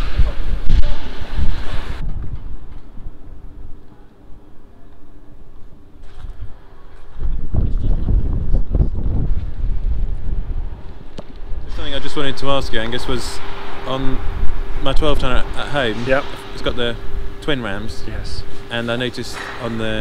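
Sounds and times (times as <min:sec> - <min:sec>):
wind buffeting microphone: 0:00.0 - 0:03.8, 0:06.1 - 0:17.5.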